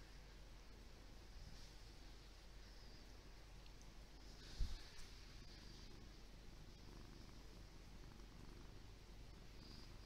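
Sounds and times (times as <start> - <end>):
cat purring: 1.2 - 10.0.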